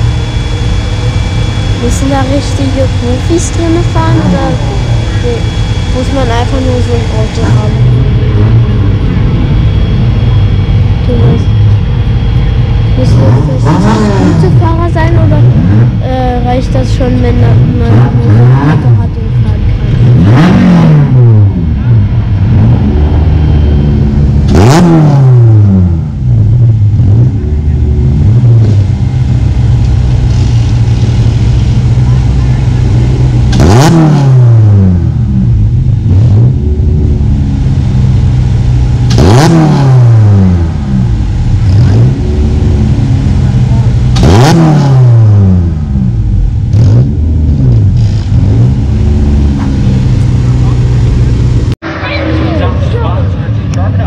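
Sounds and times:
racing car engines: 0.0s - 54.0s.

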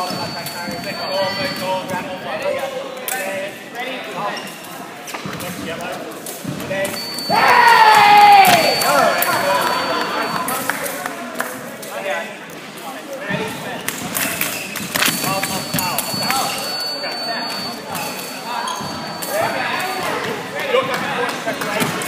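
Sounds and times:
faint steady high tone: 0.0s - 1.9s, 15.2s - 20.2s
voices in echoing hall: 0.0s - 22.0s
loud shout falling in pitch: 7.3s - 10.2s.

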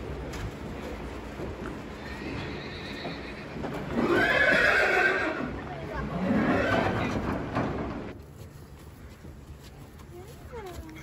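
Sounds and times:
horse whinnying: 2.0s - 5.5s.

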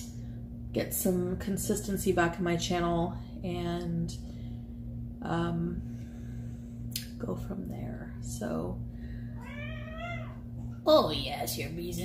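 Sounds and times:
cat meowing: 9.4s - 10.4s.

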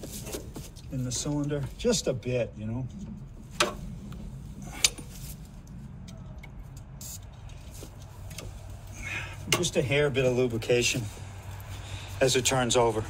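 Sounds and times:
low steady rumble: 0.0s - 13.0s.

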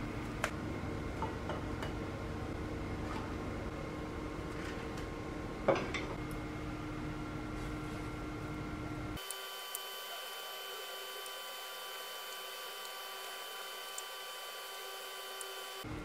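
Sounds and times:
steady hiss and hum: 0.0s - 16.0s
induction hob whining tones: 2.1s - 16.0s.

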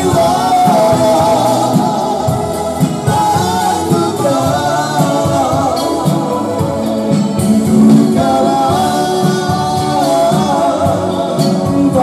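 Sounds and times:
keyboard: 0.0s - 12.0s
person singing: 0.0s - 12.0s
steady bass beat: 0.0s - 12.0s.

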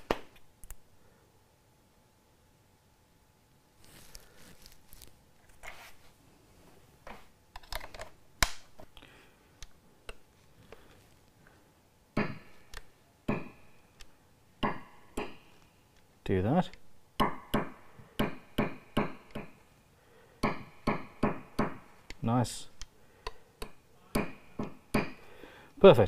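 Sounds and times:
loud knocks with ringing: 12.2s - 12.6s, 20.4s - 21.9s, 24.2s - 25.2s.

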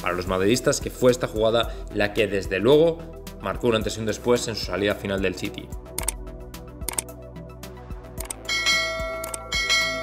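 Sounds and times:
background music with steady beat: 0.0s - 10.0s
bright bell chimes: 8.5s - 10.0s.

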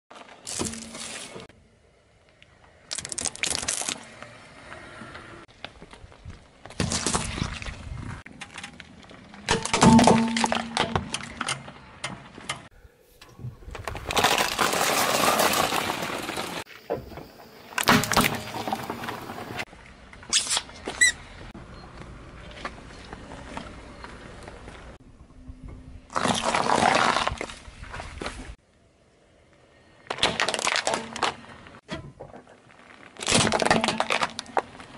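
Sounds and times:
plastic toys cracking under tyre: 2.8s - 4.2s, 13.6s - 16.6s, 30.1s - 31.4s, 32.9s - 34.9s
tyre crushing gherkins: 13.3s - 19.6s.

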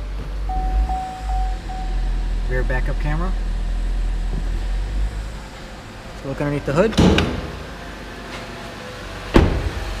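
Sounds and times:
steady low hum: 0.3s - 6.7s
car door shutting: 9.3s - 9.8s.

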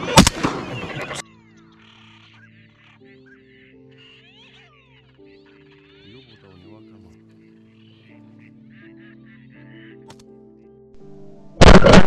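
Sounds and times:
background music: 0.0s - 12.0s
waterfowl honking: 0.6s - 10.1s.

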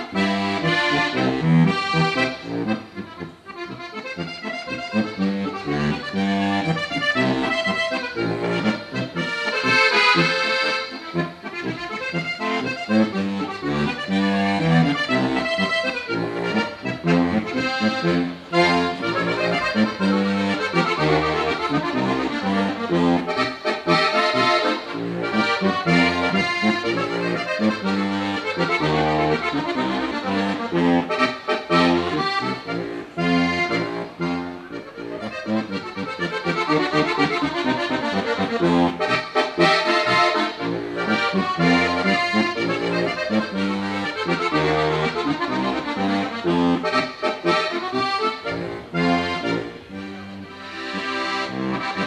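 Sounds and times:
button accordion folk tune: 0.0s - 52.0s.

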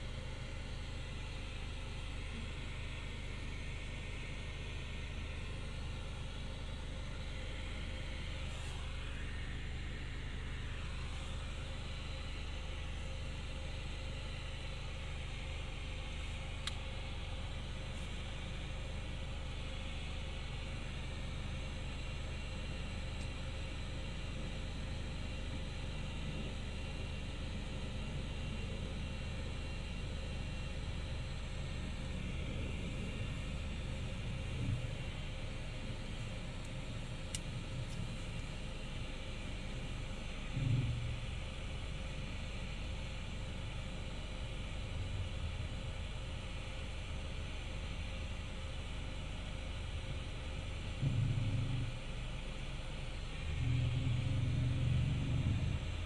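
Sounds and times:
faint steady hum: 0.0s - 56.0s
road and engine rumble in car: 0.0s - 56.0s.

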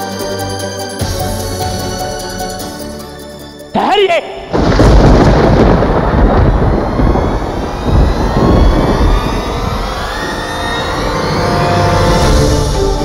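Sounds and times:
held organ-like music tones: 0.0s - 3.8s, 6.2s - 13.0s
dramatic rumble with boom: 4.5s - 13.0s
rising whoosh: 4.5s - 13.0s.

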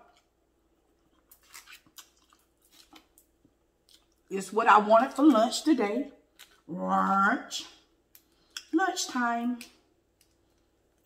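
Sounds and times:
quiet chewing of noodles: 0.1s - 4.3s.

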